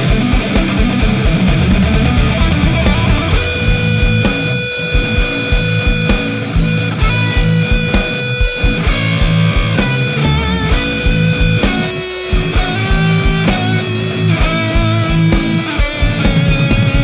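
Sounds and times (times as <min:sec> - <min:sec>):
distorted electric guitar: 0:00.0 - 0:17.0
rock drums: 0:00.0 - 0:17.0.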